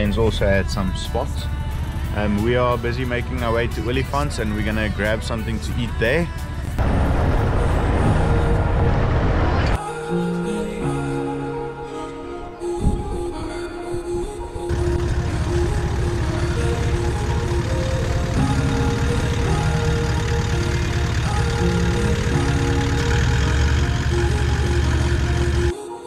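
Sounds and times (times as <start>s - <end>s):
diesel engine running: 0.0s - 9.8s, 14.7s - 25.7s
background music: 0.0s - 26.0s.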